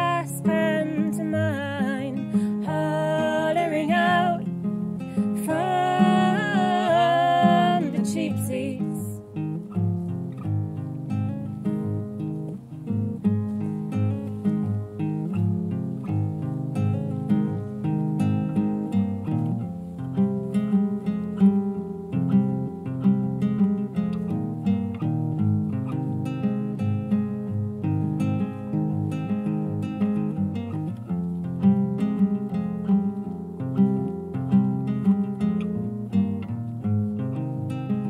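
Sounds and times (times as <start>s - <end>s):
acoustic guitar plucked: 0.0s - 38.0s.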